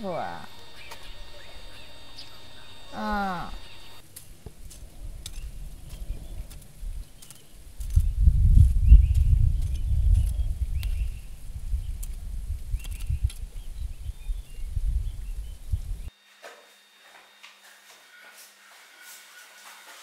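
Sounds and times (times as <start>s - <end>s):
faint bird chirps: 0.0s - 4.0s
wind buffeting microphone: 0.4s - 16.1s.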